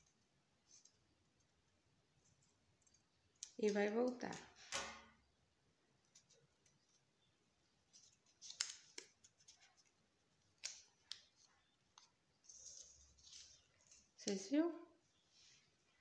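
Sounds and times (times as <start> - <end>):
soft paper rustle: 0.0 - 4.7, 5.9 - 16.0
paper crinkling: 7.8 - 14.4
paper snaps: 8.4 - 9.2.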